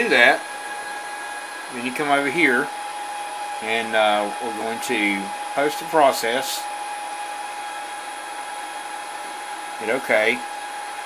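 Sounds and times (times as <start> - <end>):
machine whir: 0.0 - 11.0
thin steady whine: 0.0 - 11.0.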